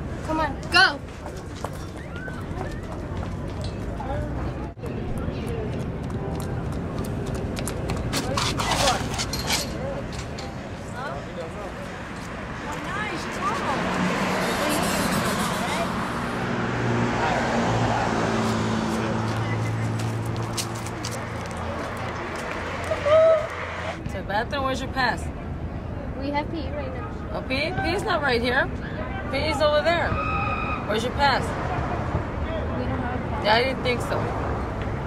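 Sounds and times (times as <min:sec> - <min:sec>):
street noise: 0:00.0 - 0:35.0
indistinct voices: 0:07.9 - 0:20.0.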